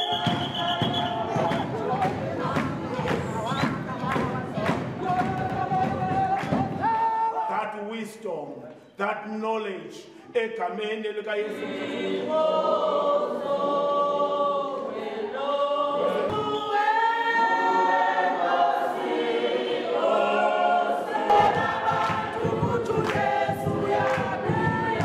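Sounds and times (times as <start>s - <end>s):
rhythmic percussive knocks: 0.0s - 7.1s, 20.4s - 25.0s
group singing unaccompanied: 0.0s - 7.4s, 11.2s - 25.0s.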